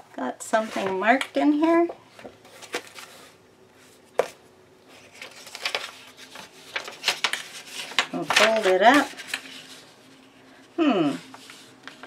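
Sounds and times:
paper rustling and crinkling: 0:02.2 - 0:12.0.

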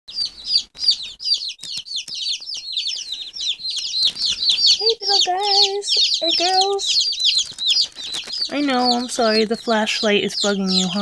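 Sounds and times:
baby chicks peeping: 0:00.1 - 0:11.0.

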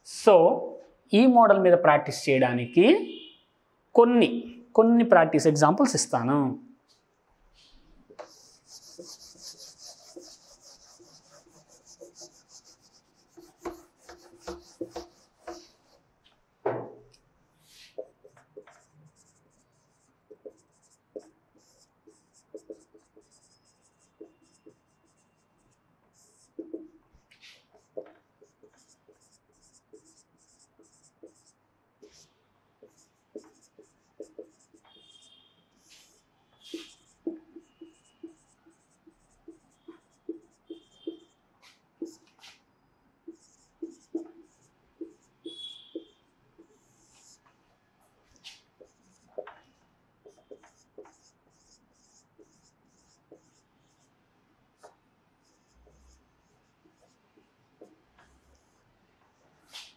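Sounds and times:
marker scratching on whiteboard: 0:07.6 - 0:16.0, 0:17.6 - 0:54.2, 0:54.8 - 0:59.9
light marker taps: 0:13.3 - 0:15.8, 0:26.3 - 0:27.0, 0:43.3 - 0:47.3, 0:53.3 - 0:53.5.

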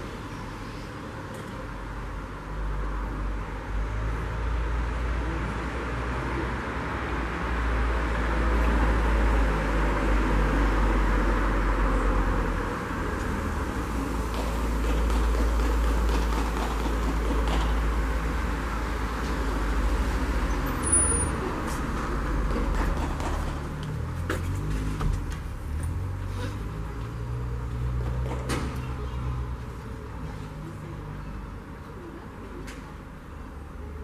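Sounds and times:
outdoor rumble and hiss: 0:00.0 - 0:34.0.

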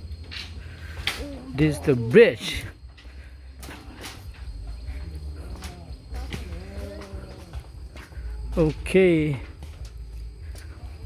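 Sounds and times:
footsteps on metal mesh: 0:00.1 - 0:11.0.

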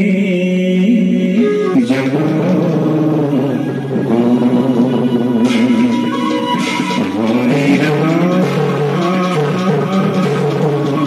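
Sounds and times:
person singing wavering notes: 0:00.0 - 0:11.0.

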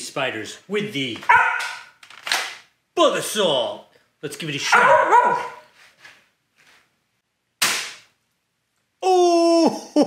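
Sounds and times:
salt gun shot crack: 0:07.6 - 0:08.1.

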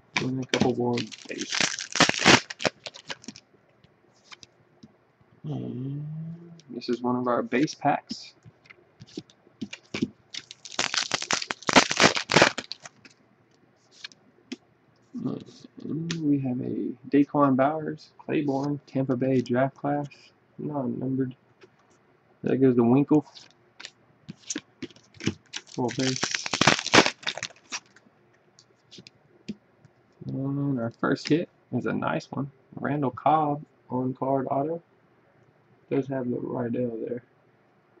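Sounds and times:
foil pack tearing and crinkling: 0:00.1 - 0:03.4, 0:09.1 - 0:13.1, 0:23.8 - 0:28.0.

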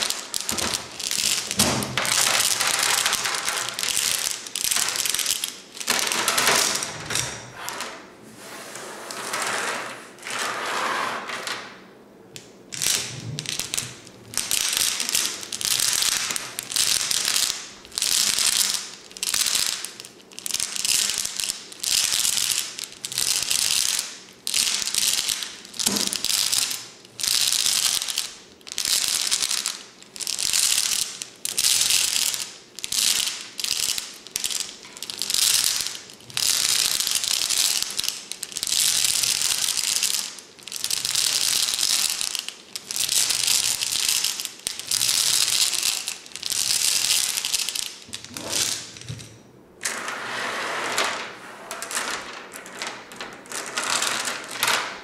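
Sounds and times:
glass stones rattling in glass vase: 0:00.0 - 0:07.6, 0:12.7 - 0:49.4, 0:51.8 - 0:55.0.

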